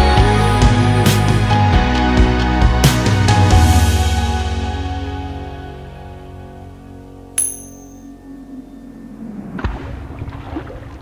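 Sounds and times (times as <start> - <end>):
background music: 0.0 - 9.8
metallic coin ping: 7.4 - 8.2.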